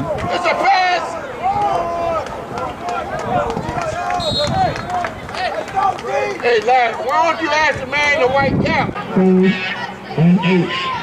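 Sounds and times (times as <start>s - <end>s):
people shouting: 0.0s - 6.4s, 9.0s - 11.0s
referee's whistle blast: 4.2s - 4.8s.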